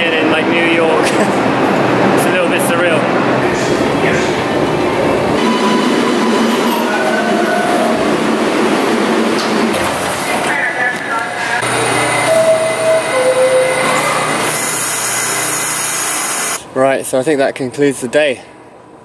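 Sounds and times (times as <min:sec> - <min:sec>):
subway train rumble: 0:00.0 - 0:19.0.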